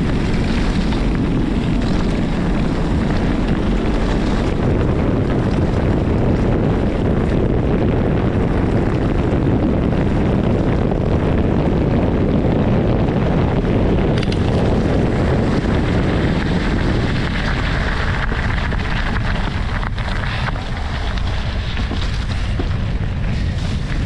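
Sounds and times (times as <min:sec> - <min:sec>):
tyres rumbling on gravel: 0:00.0 - 0:24.0
wind rushing over microphone: 0:00.0 - 0:24.0.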